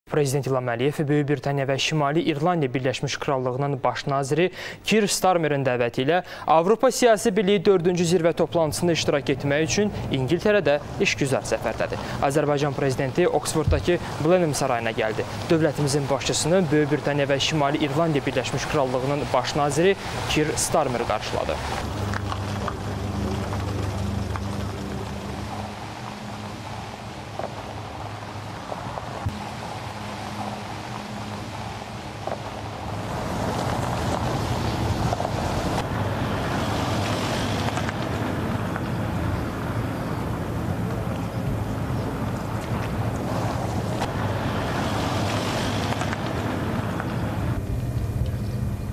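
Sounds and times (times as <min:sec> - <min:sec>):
vehicle engine hum: 0:07.9 - 0:48.9.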